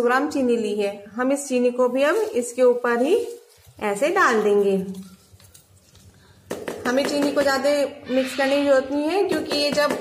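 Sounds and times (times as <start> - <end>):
hands rustling granulated sugar: 1.8 - 6.3.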